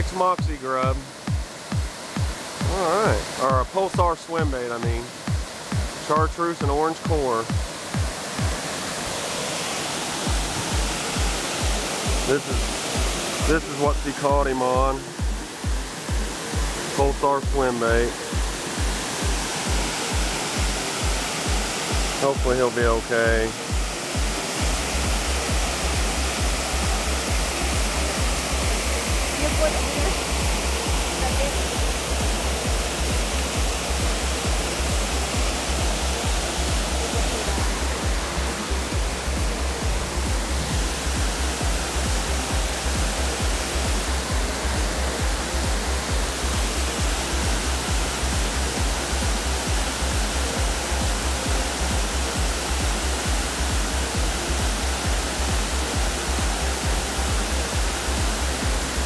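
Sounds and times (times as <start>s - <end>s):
music with pulsing beat: 0.0s - 9.2s, 10.1s - 59.0s
water rushing over dam: 0.0s - 59.0s.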